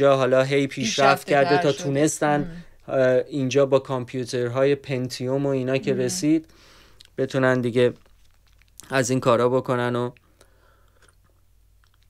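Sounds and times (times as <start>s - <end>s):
man speaking: 0.0s - 6.5s
small mouth clicks: 10.2s - 12.0s.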